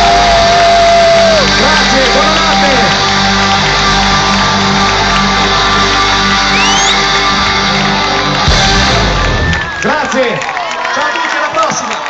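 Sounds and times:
crowd shouting: 0.0 - 2.3
rock band holding a chord: 0.0 - 9.8.

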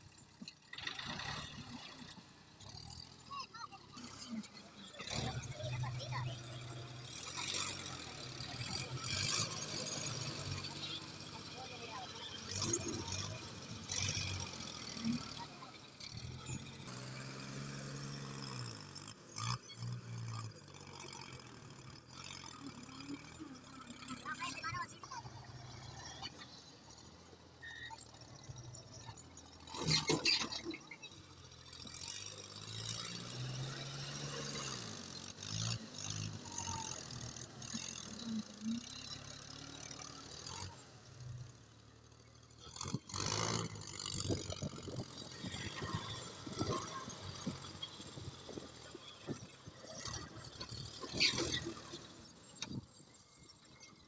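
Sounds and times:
tractor diesel engine revving: 0.0 - 53.9.

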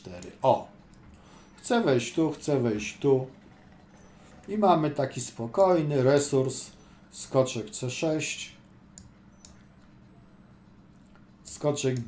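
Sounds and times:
low steady hum: 0.0 - 12.0
computer mouse clicking: 8.9 - 9.9.

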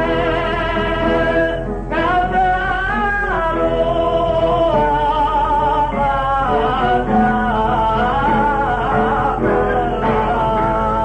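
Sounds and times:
guitar accompaniment: 0.0 - 11.0
man singing ornamented notes: 0.0 - 11.0
steady low hum: 0.0 - 11.0.

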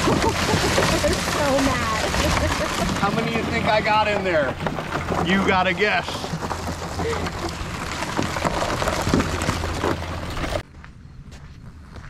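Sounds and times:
crabs scrabbling on boat hull: 0.0 - 10.6.

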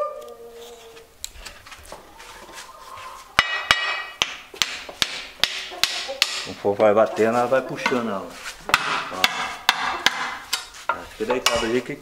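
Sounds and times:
hammer tapping: 3.4 - 6.5, 8.7 - 10.7.

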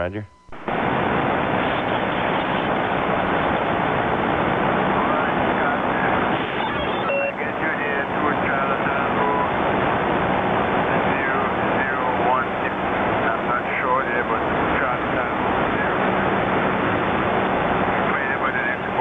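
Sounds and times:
weak distant radio voice: 0.0 - 0.3, 5.0 - 9.5, 18.0 - 19.0
radio hiss and static: 0.0 - 19.0.

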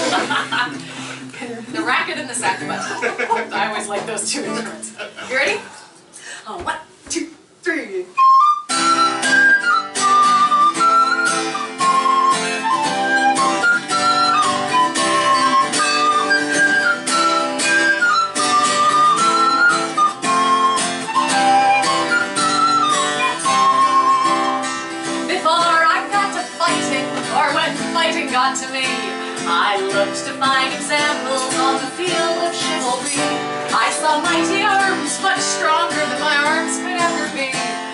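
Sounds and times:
strummed acoustic guitar: 0.0 - 5.1, 8.7 - 37.9
recorder playing folk melody: 8.2 - 25.3.

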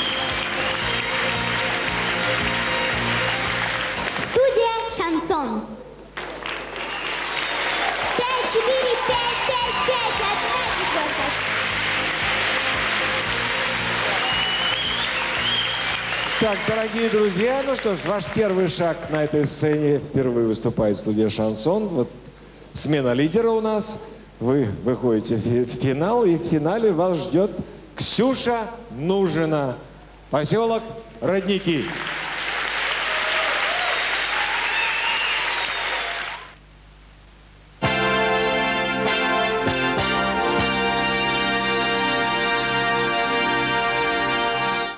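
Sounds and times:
audience applauding: 0.0 - 4.5, 6.1 - 19.8, 31.5 - 36.6
background music: 0.0 - 5.9, 8.0 - 19.1, 37.8 - 44.9.

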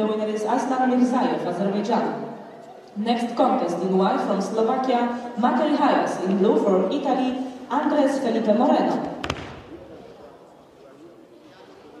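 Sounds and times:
faint hall murmur: 0.0 - 12.0
body slapping onto mat: 9.2 - 9.6.

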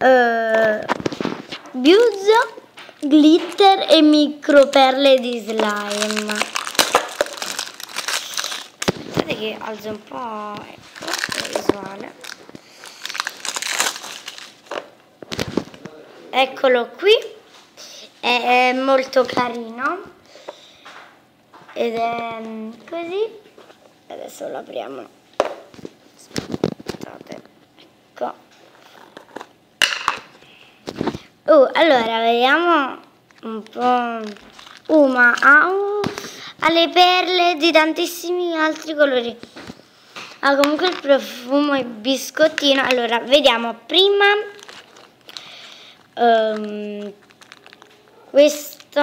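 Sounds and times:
plastic wrap crinkling: 0.5 - 15.9, 25.6 - 27.5, 32.9 - 36.3, 42.3 - 49.0.

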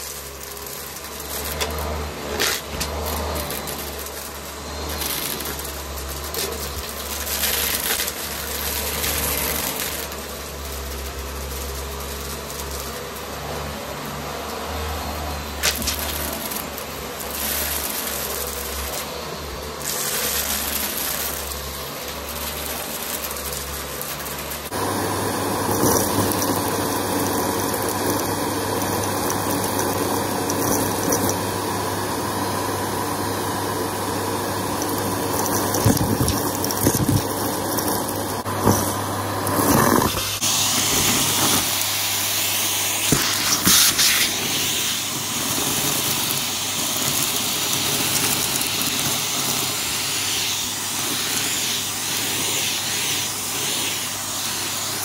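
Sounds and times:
debris rattling up nozzle: 0.0 - 31.6, 34.4 - 55.0
vacuum cleaner running: 0.0 - 55.0.

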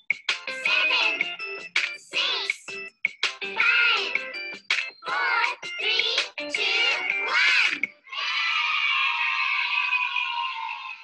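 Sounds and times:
children's counting song: 0.3 - 8.2.

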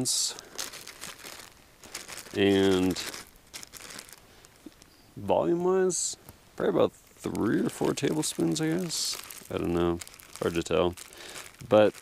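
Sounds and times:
plastic bag crinkling: 0.0 - 5.8, 6.6 - 12.0.

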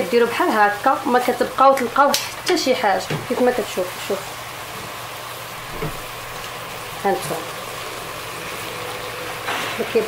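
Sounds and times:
sugar syrup sizzling in a pot: 0.0 - 10.0.

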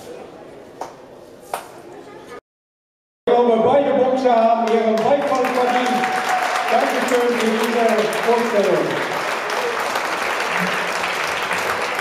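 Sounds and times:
murmur of voices in echoing hall: 0.0 - 2.4.

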